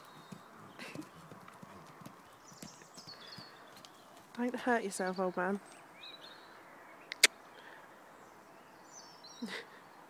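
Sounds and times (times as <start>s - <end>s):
hoofbeats on muddy ground: 0.0s - 5.2s.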